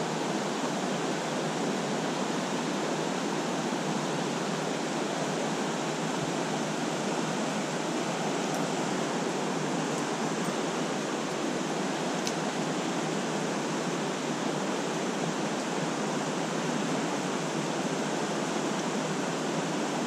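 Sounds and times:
stream rushing over riffles: 0:00.0 - 0:20.0.

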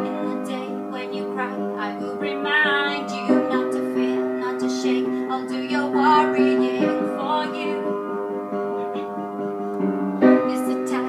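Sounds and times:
woman singing: 0:00.0 - 0:08.1, 0:10.4 - 0:11.0
upright piano chords: 0:00.0 - 0:11.0.

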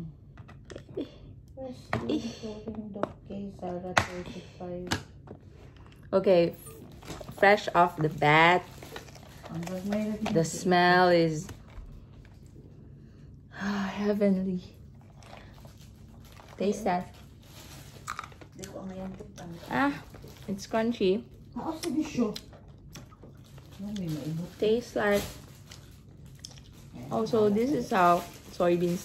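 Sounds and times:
person chewing crunchy beans: 0:18.0 - 0:18.8, 0:25.7 - 0:27.0.

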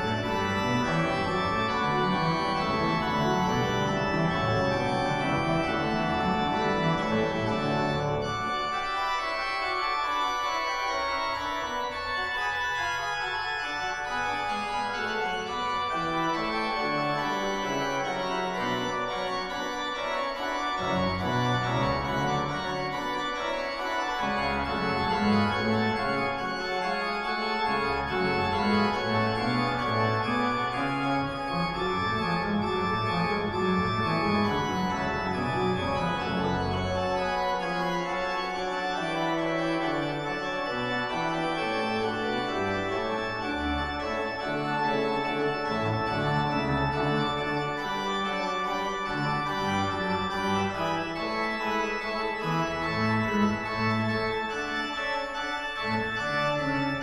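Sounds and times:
pipe organ playing: 0:00.0 - 0:57.0.

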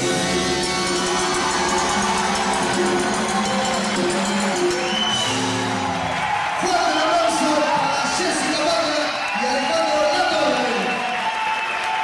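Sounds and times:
salsa band playing: 0:00.0 - 0:09.1
latin percussion: 0:00.0 - 0:11.0.

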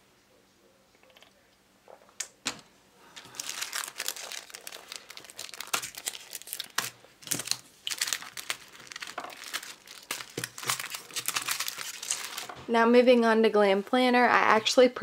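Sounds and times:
plastic packaging crinkling: 0:03.1 - 0:12.7.

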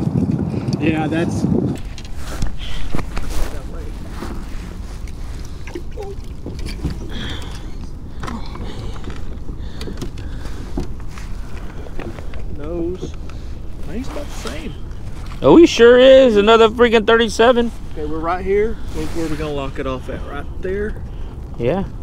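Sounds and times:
wind rumble on microphone: 0:00.0 - 0:22.0
knocks and rustles on plastic: 0:08.2 - 0:13.3.

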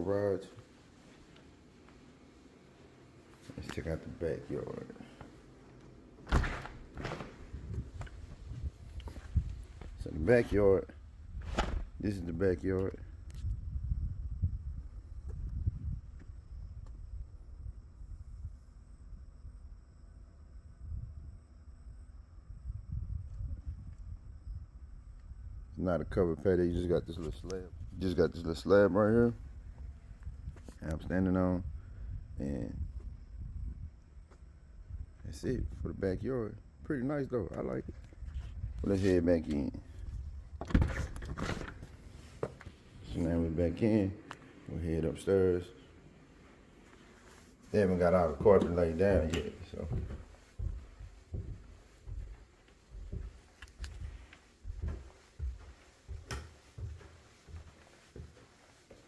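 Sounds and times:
faint high-pitched hum: 0:00.0 - 0:57.8
wind buffeting microphone: 0:06.8 - 0:18.7, 0:22.5 - 0:26.2, 0:31.6 - 0:36.2, 0:49.1 - 0:56.9
door scraping rattle: 0:40.6 - 0:42.3.

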